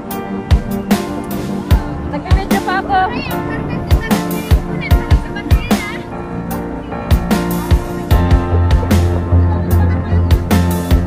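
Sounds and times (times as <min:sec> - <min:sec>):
background music with sustained tones: 0:00.0 - 0:11.0
drum beats: 0:00.0 - 0:11.0.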